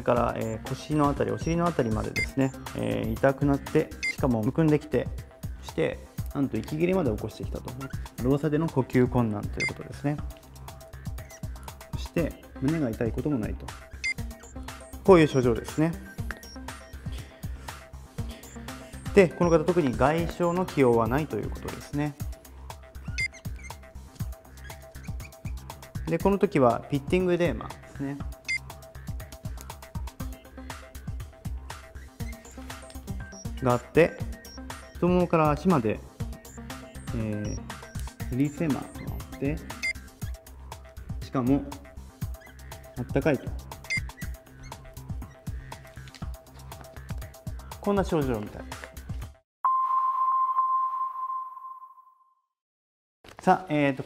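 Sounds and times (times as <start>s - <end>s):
background music with low beat: 0.0s - 49.4s
marker squeaking on whiteboard: 0.4s - 2.6s, 3.3s - 4.3s, 7.7s - 8.3s, 10.9s - 11.8s, 13.8s - 17.0s, 18.1s - 22.0s, 22.9s - 26.2s, 28.4s - 35.3s, 36.3s - 41.0s, 42.1s - 47.8s.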